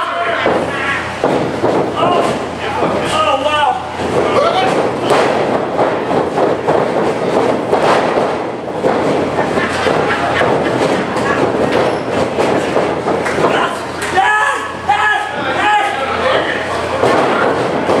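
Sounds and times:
crowd shouting and cheering: 0.0s - 6.8s, 9.2s - 18.0s.

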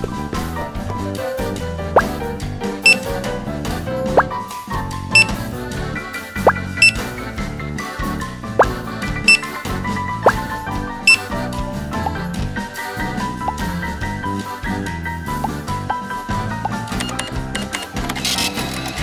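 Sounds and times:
background music: 0.0s - 19.0s
checkout scanner beep: 2.9s - 3.1s, 5.2s - 5.4s, 6.8s - 7.1s, 9.3s - 9.6s, 11.1s - 11.3s, 16.7s - 17.9s.

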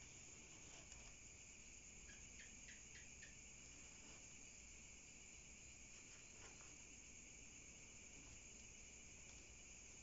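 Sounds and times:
crickets chorus: 0.0s - 10.0s
short cricket chirps: 0.0s - 10.0s.

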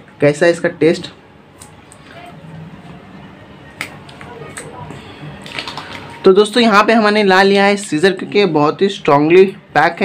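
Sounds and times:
plastic cup handling noise: 5.4s - 6.3s.

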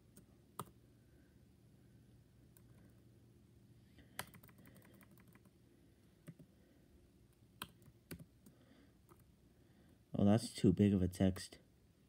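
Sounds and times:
keyboard keys tapping: 4.2s - 5.5s.

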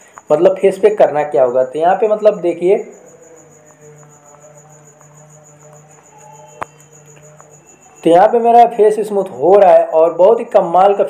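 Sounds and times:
high-pitched whine: 0.0s - 9.6s.

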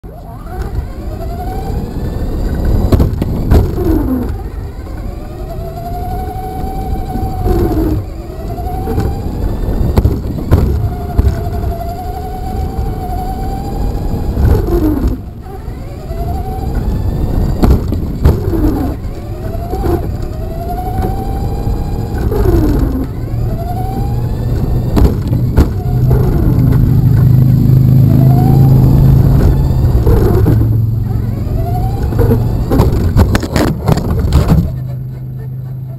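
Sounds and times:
electric motor whining: 0.0s - 35.9s
steady low hum: 0.0s - 35.9s
tyres rumbling on asphalt: 0.0s - 35.9s
sharp knocks: 25.0s - 26.0s.

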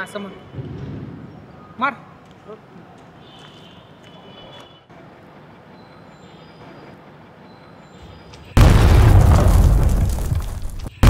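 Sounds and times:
faint background noise: 0.0s - 11.0s
deep rumbling boom: 0.6s - 1.8s, 8.6s - 10.9s.

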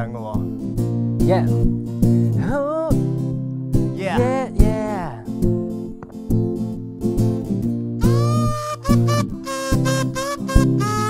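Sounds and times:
acoustic guitar strumming: 0.5s - 11.0s.

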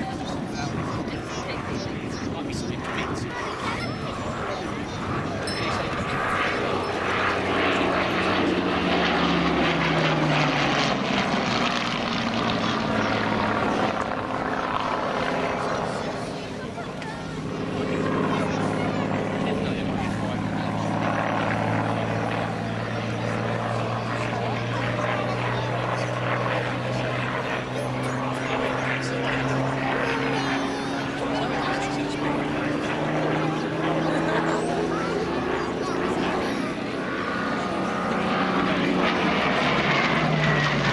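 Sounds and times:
propeller plane engine passing: 0.0s - 40.9s.

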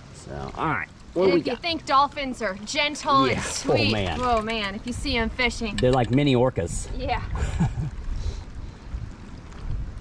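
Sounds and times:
faint water sounds: 0.0s - 10.0s
wind buffeting microphone: 3.3s - 10.0s.

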